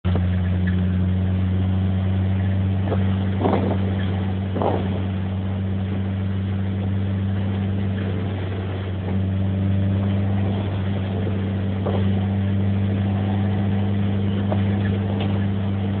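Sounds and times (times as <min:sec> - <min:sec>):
car engine droning: 0:00.0 - 0:16.0.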